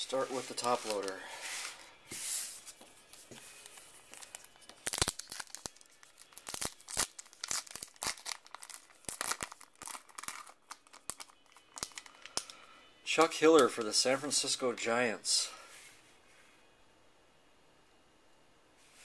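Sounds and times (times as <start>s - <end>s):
wrapper tearing and crinkling: 0.4s - 1.2s, 4.0s - 12.5s.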